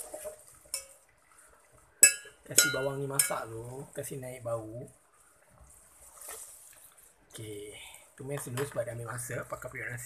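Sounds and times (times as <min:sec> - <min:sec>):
spoon sharp clink: 0:02.0 - 0:03.4.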